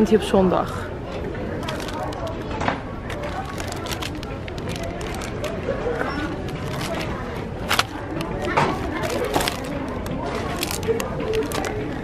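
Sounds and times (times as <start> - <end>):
shop background noise: 0.0 - 12.0
plastic wrapping clicks and rustles: 1.5 - 12.0.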